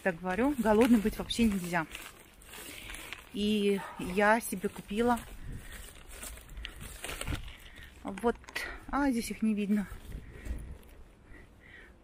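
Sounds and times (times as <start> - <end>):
plastic snack packet crinkling: 0.0 - 9.0.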